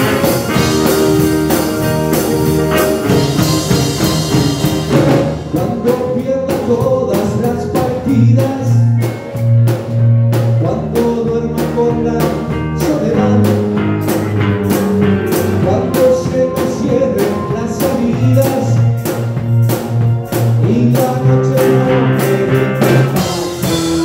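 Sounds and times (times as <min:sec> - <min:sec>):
drum kit beat: 0:00.0 - 0:24.0
live band playing: 0:00.0 - 0:24.0.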